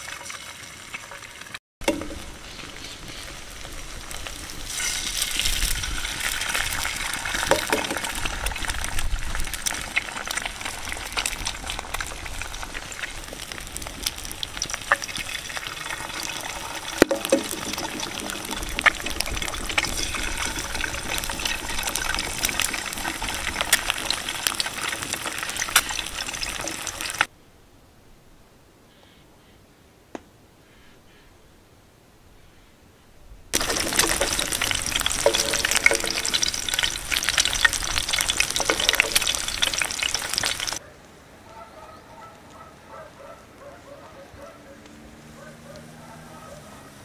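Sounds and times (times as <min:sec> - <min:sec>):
eggs sizzling in oil: 0:00.0 - 0:27.3, 0:33.5 - 0:40.8
eggshells cracking: 0:03.4 - 0:27.3, 0:33.6 - 0:40.8.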